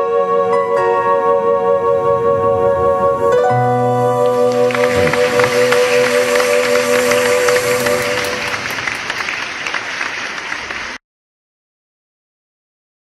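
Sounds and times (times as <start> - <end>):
held music chord: 0.0 - 9.1
audience applause: 4.2 - 11.0.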